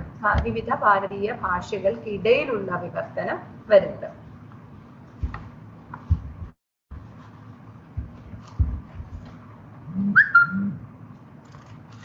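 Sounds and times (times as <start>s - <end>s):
high whistle-like call: 10.0s - 10.8s.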